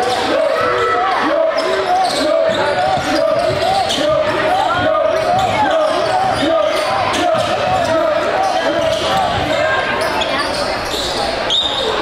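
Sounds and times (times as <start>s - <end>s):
echoing voices: 0.0s - 12.0s
sneakers squeaking: 0.0s - 12.0s.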